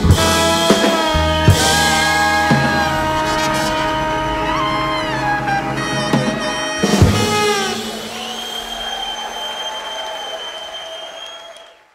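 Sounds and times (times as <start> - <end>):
audience applause: 4.3 - 11.9.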